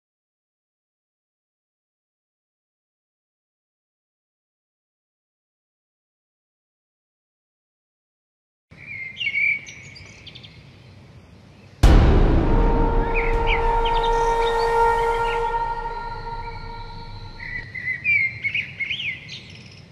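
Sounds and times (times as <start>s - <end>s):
loud strike with ringing tone: 11.8s - 17.6s.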